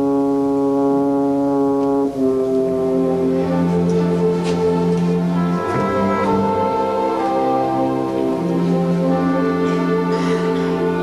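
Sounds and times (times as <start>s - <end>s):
orchestra sustained chords: 0.0s - 11.0s.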